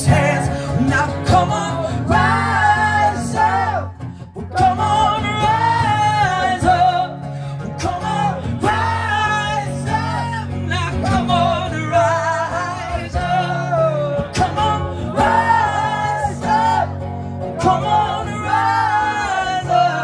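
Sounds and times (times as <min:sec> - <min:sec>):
acoustic guitar: 0:00.0 - 0:20.0.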